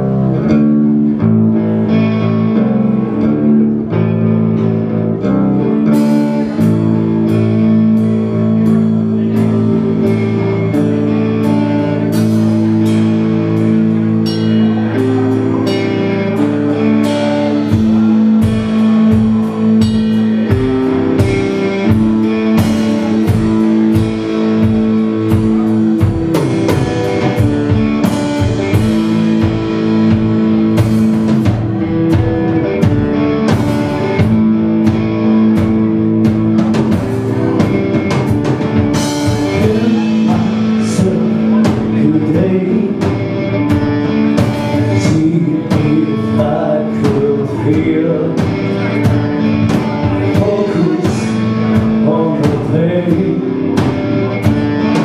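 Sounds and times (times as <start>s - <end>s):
bass: 0.0s - 55.0s
drums: 0.0s - 55.0s
electric guitar notes: 0.0s - 55.0s
person singing: 37.1s - 55.0s.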